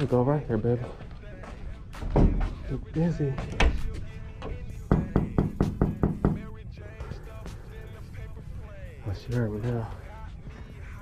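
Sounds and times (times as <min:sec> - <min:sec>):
faint background music: 0:00.0 - 0:11.0
knocks on glass door: 0:04.9 - 0:06.5.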